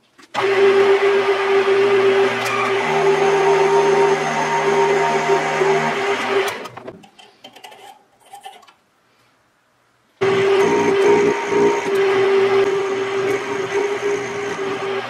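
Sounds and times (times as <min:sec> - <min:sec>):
metal lathe humming: 0:00.4 - 0:06.8, 0:10.2 - 0:15.0.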